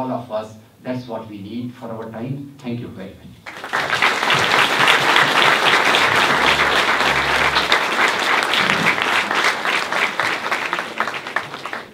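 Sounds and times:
audience applauding: 3.5s - 11.9s.

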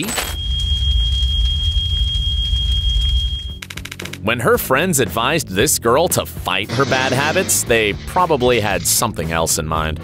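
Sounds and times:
rapid clicks: 2.4s - 4.2s
deep drone: 6.7s - 9.2s.

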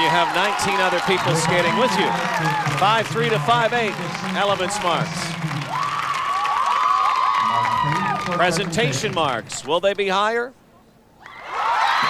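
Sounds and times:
crowd cheering: 0.0s - 9.7s, 11.2s - 12.0s
women shrieking and cheering: 0.1s - 2.8s, 5.7s - 8.3s, 11.2s - 12.0s.

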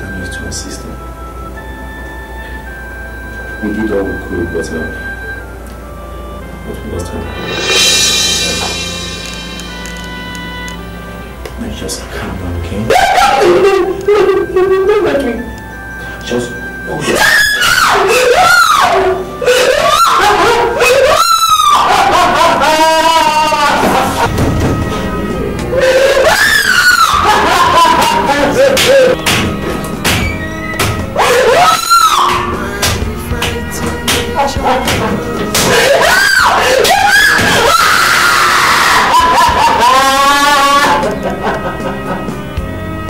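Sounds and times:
woman wailing and screaming: 17.0s - 24.3s, 25.7s - 29.2s, 30.2s - 32.7s, 34.4s - 41.2s.

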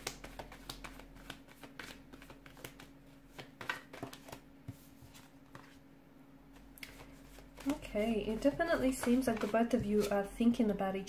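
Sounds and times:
cards shuffling: 0.0s - 5.8s, 6.8s - 10.2s
person speaking: 7.6s - 11.0s.

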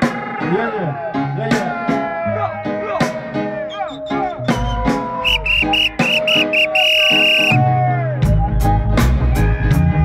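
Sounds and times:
live reggae band playing: 0.0s - 0.5s, 1.3s - 10.0s
high whistle-like tone: 3.7s - 7.6s
bass line: 3.8s - 10.0s.

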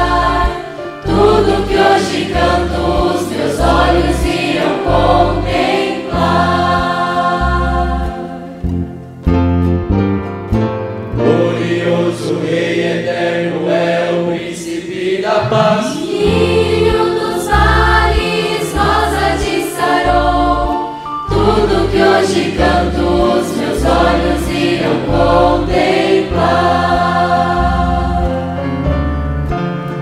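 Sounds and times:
choir singing a gospel hymn: 0.0s - 8.9s, 11.2s - 29.0s
instrumental accompaniment: 0.0s - 13.8s, 14.9s - 30.0s
deep held notes: 15.2s - 18.0s.

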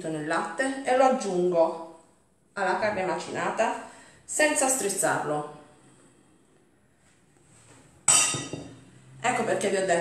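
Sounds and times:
glass bowl clinking: 8.0s - 9.0s.

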